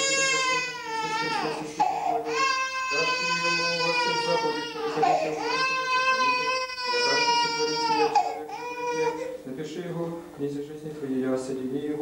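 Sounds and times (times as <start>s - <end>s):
baby crying: 0.0s - 9.4s.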